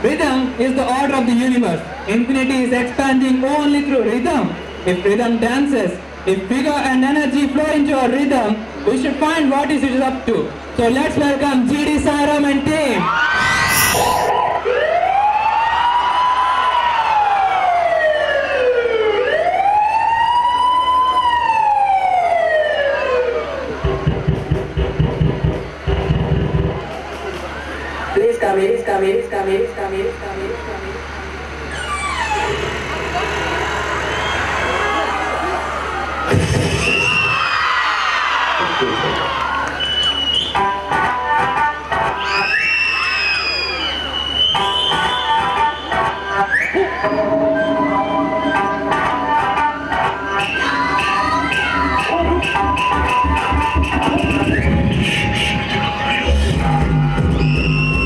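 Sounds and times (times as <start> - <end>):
audience cheering and whooping: 13.0 - 17.7, 33.1 - 40.6, 42.2 - 45.4
siren wailing: 13.1 - 23.9, 46.8 - 58.0
deep bass hits of dance music: 36.3 - 37.2
dance music over loudspeakers: 40.5 - 42.6, 44.5 - 47.2, 47.9 - 58.0.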